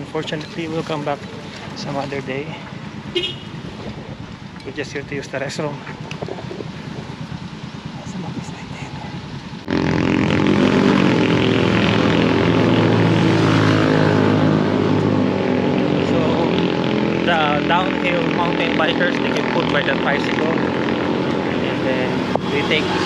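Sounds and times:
loud steady engine drone: 0:00.0 - 0:23.0
outdoor ambience: 0:00.0 - 0:23.0.

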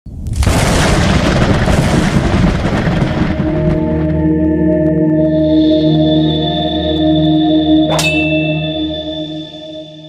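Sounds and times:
held musical chord: 0:03.8 - 0:10.0.

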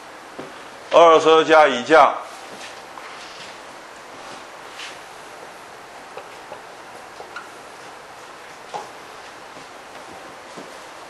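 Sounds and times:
room hiss: 0:00.0 - 0:11.0
marker clicking and squeaking on whiteboard: 0:07.2 - 0:07.6.

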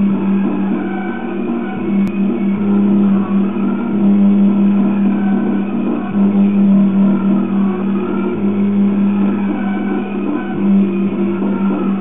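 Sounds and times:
instrumental music with low drone: 0:00.0 - 0:12.0.

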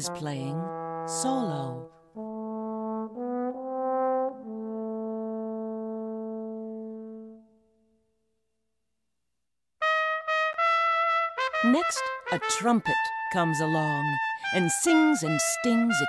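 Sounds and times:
solo trombone: 0:00.0 - 0:07.6, 0:09.8 - 0:16.0
trumpet short notes: 0:09.8 - 0:16.0.

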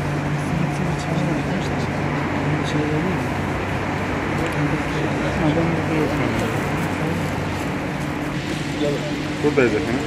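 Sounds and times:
steady low hum: 0:00.0 - 0:10.0
people talking indistinctly: 0:04.2 - 0:10.0.

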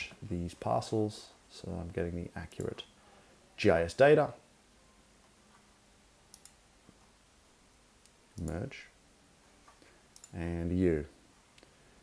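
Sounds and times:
computer mouse clicks: 0:06.3 - 0:06.6, 0:10.1 - 0:10.4.

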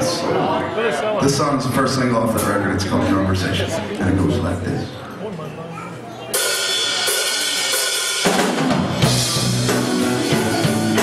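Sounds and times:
drums: 0:05.9 - 0:11.0
electric guitars: 0:06.7 - 0:11.0.

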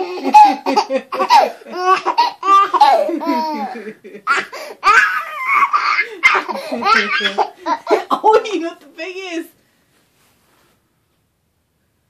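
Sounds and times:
baby laughing: 0:00.0 - 0:08.3.

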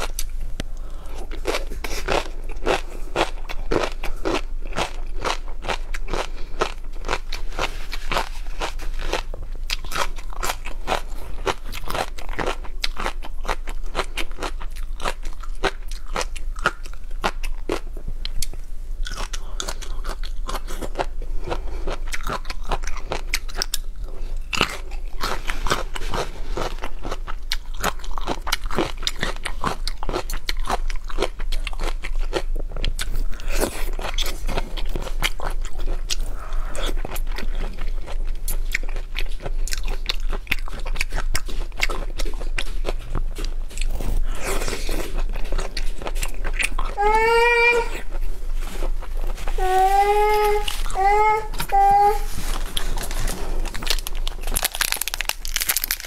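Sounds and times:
crunching and chewing food: 0:00.0 - 0:56.0.

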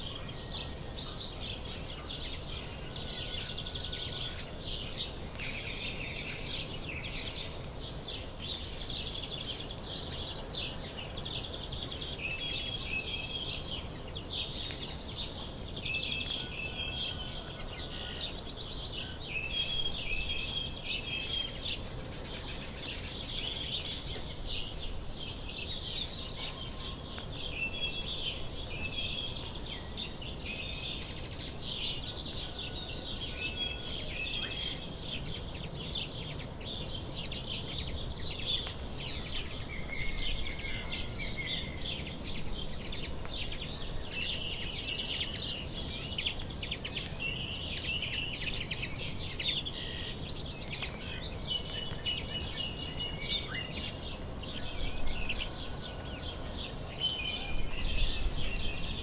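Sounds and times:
low background noise: 0:00.0 - 0:59.0
songbirds chirping and singing: 0:00.0 - 0:59.0.

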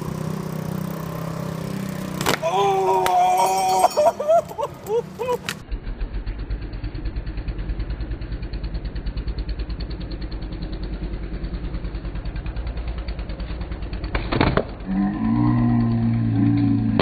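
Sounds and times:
engine idling: 0:05.6 - 0:14.9.

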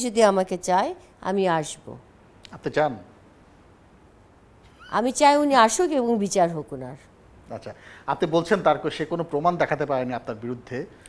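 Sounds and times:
woman speaking: 0:00.0 - 0:02.1, 0:04.8 - 0:07.1.

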